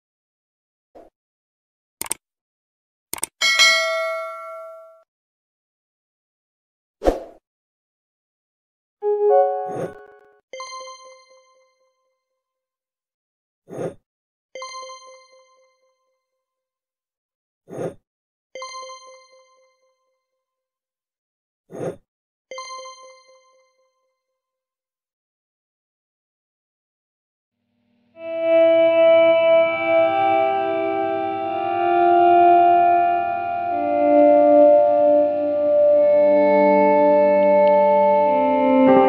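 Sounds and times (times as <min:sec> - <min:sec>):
notification bell ding: 0:03.4 - 0:05.0.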